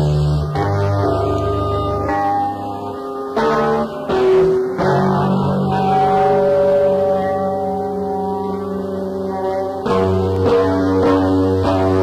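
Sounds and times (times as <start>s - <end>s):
bass guitar: 0.0s - 12.0s
electric guitar chord ringing: 0.0s - 12.0s
guitar strum: 0.0s - 12.0s.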